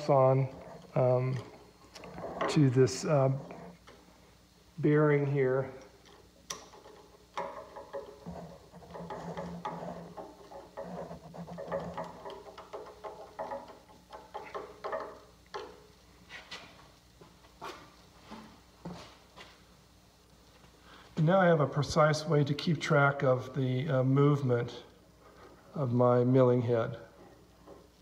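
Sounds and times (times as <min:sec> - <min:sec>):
metal clicks and knocks: 0:06.0 - 0:15.8.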